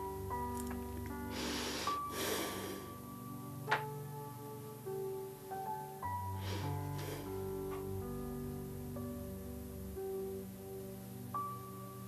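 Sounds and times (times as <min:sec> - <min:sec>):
soft music of held tones: 0:00.0 - 0:12.0
person breathing: 0:01.2 - 0:03.1, 0:06.3 - 0:07.6.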